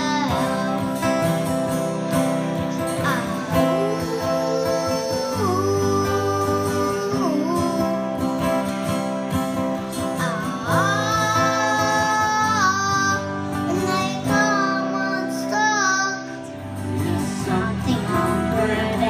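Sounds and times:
acoustic guitars strummed: 0.0 - 19.0.

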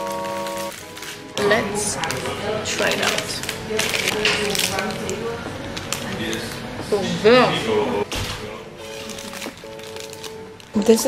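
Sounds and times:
paper wrapper crinkling: 0.0 - 6.6, 8.7 - 11.0.

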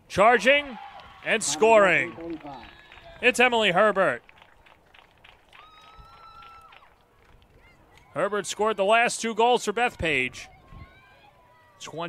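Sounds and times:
faint open-air field noise: 0.0 - 12.0
spectator cheering: 0.2 - 3.4.

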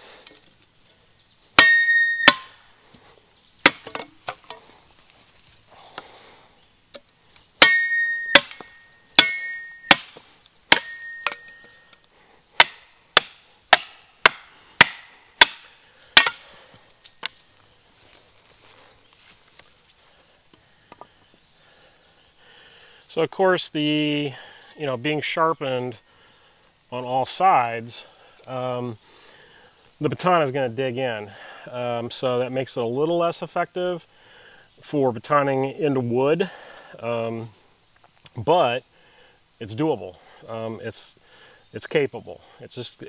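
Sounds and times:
steel ringing tone: 1.6 - 2.5, 7.6 - 10.0, 10.7 - 12.0
wooden baton striking steel blade: 1.6 - 2.6, 7.6 - 11.8, 12.6 - 16.4.

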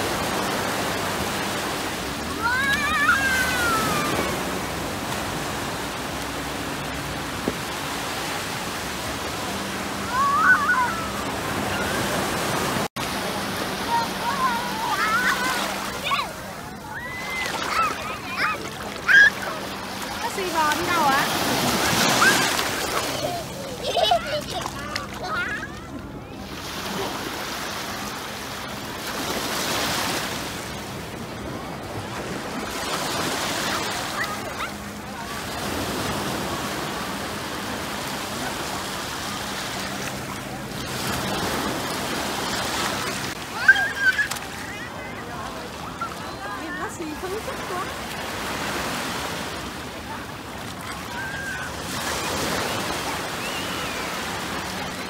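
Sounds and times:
surf waves washing on beach: 0.0 - 55.0
child's high voice: 2.4 - 4.4, 10.1 - 12.0, 13.9 - 19.6, 43.4 - 45.1, 51.1 - 51.7.

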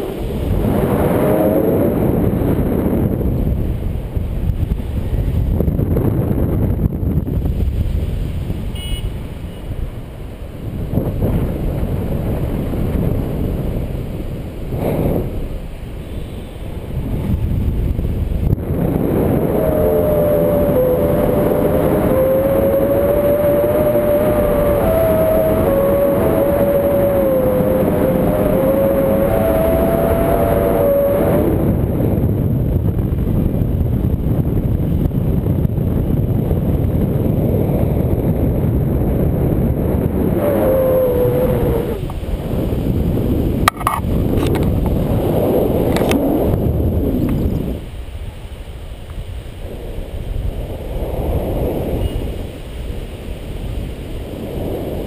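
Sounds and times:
wind rushing over microphone: 0.0 - 55.0
short high beep: 8.8 - 9.2.

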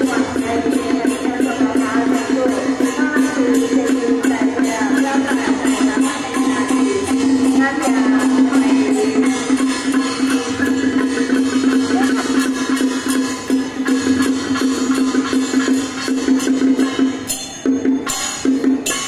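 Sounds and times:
festival music with percussion beat: 0.0 - 19.0.

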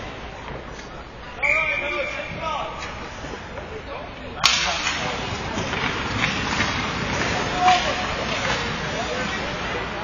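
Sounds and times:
arena noise: 0.0 - 10.0
hockey sticks cracking on puck: 4.4 - 9.8.

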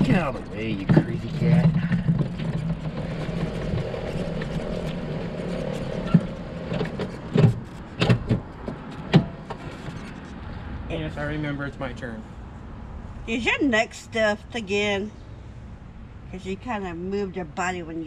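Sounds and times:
golf cart running: 0.0 - 10.4
sharp thumps and knocks: 0.0 - 10.4.

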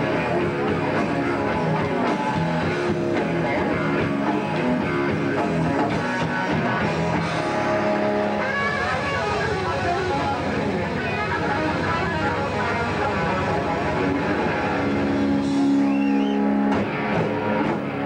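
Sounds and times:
blues-rock band playing: 0.0 - 18.0.

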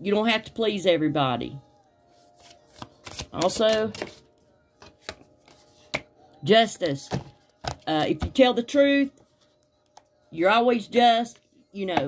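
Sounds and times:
cards clicking: 2.7 - 4.2.

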